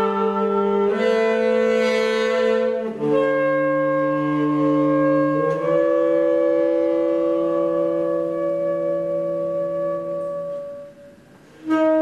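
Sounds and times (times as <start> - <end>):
saxophones holding long notes: 0.0 - 12.0.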